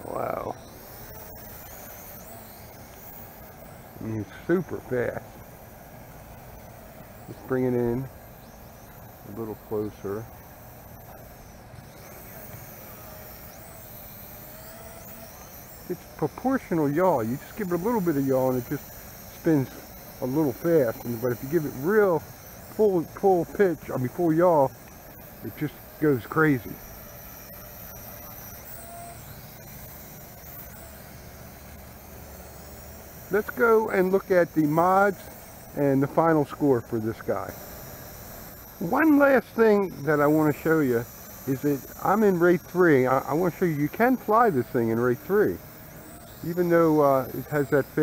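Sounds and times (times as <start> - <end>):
toy quadcopter whirring: 0.0 - 48.0.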